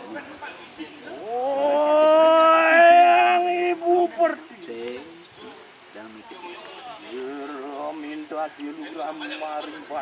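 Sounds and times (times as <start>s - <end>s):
person howling: 1.2s - 3.7s.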